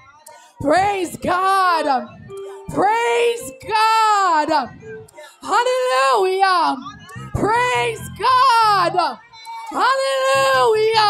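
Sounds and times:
woman singing into a microphone: 0:00.4 - 0:11.0
low steady tones: 0:00.6 - 0:09.2.

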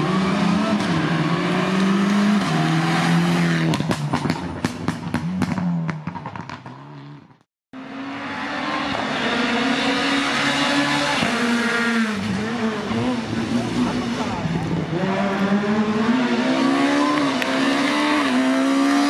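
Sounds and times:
rally car engine at full throttle: 0:00.0 - 0:19.0.

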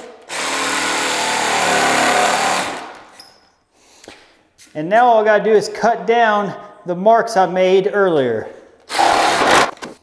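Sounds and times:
jigsaw cutting wood: 0:00.0 - 0:03.0, 0:08.9 - 0:09.8.

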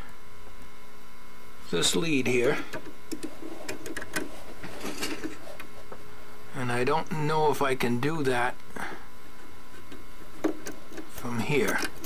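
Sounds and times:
steady hiss and hum: 0:00.0 - 0:12.0.

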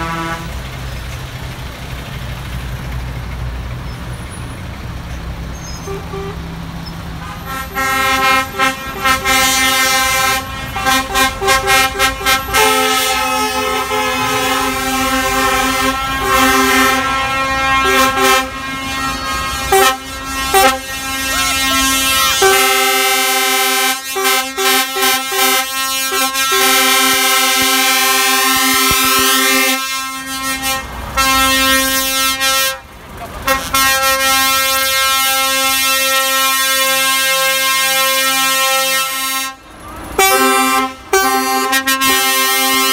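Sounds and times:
truck air horns blowing: 0:00.0 - 0:01.1, 0:05.4 - 0:42.9.

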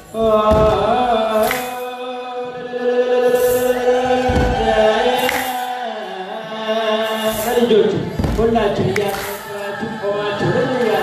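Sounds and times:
choir chanting in unison: 0:00.5 - 0:11.0.

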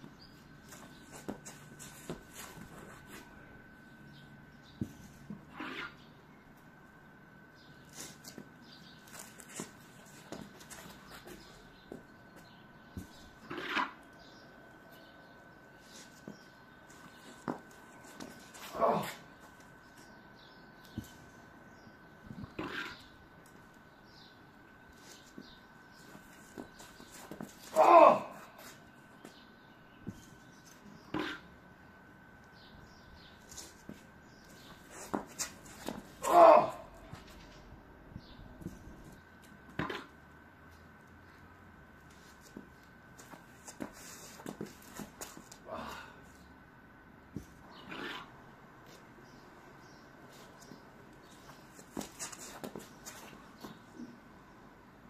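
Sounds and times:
shoes scuffing on concrete: 0:00.0 - 0:03.4, 0:07.8 - 0:13.8, 0:15.8 - 0:20.1, 0:24.9 - 0:29.4, 0:33.4 - 0:36.2, 0:42.1 - 0:45.6, 0:50.3 - 0:54.1
faint outdoor background: 0:00.0 - 0:55.0
man grunting shout of effort: 0:27.7 - 0:28.5, 0:36.2 - 0:37.0.

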